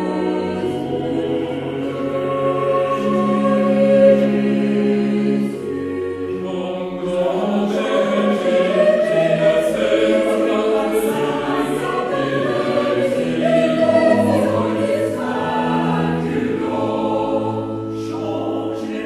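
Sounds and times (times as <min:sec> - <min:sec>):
cello and organ low notes: 0:00.0 - 0:19.0
vocal ensemble singing: 0:00.0 - 0:19.0.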